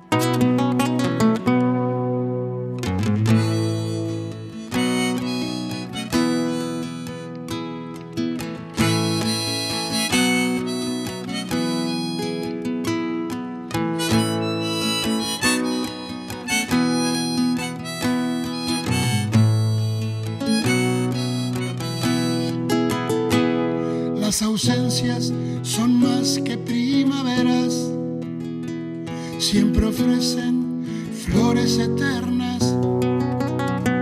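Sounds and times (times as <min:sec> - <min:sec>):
strummed acoustic guitar: 0:00.0 - 0:34.0
harmonica long notes: 0:03.2 - 0:24.1.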